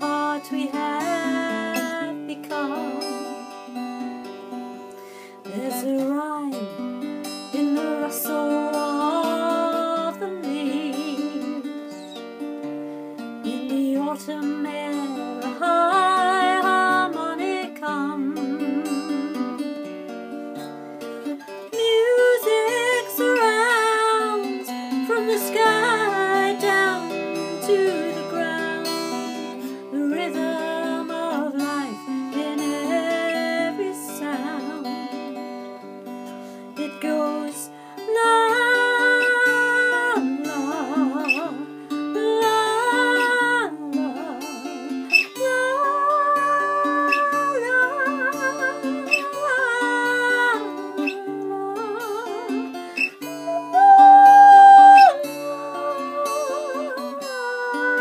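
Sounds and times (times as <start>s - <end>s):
woman singing: 0.0s - 12.2s, 13.4s - 20.7s, 21.4s - 35.9s, 36.6s - 58.0s
fingerpicked acoustic guitar: 0.0s - 58.0s.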